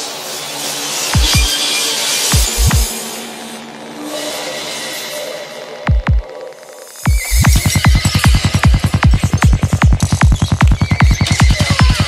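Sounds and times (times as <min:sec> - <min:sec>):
kick drum beat: 0:01.2 - 0:01.5, 0:02.4 - 0:02.9, 0:05.9 - 0:06.3, 0:07.1 - 0:12.0
fast rolling bassline: 0:02.4 - 0:02.9, 0:07.1 - 0:12.0.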